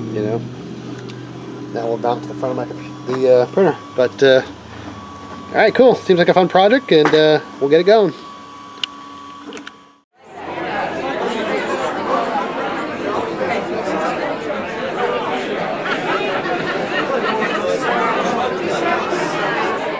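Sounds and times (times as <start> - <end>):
crowd babble: 10.2 - 19.9.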